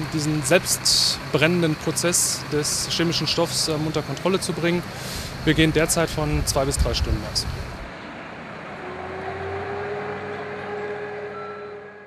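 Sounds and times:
fire engine engine running: 0:00.0 - 0:12.0
steady engine whine: 0:00.0 - 0:12.0
street noise: 0:00.0 - 0:12.0.

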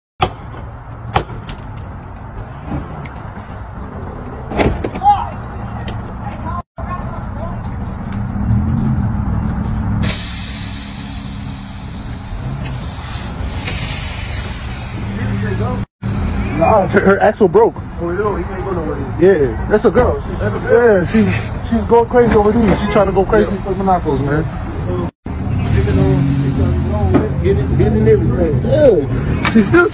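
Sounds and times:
vehicle engine rumbling: 0:00.2 - 0:29.9.

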